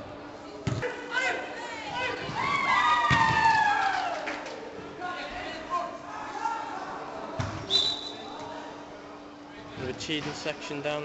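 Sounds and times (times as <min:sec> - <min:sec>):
high whistle-like tone: 0:07.7 - 0:08.2.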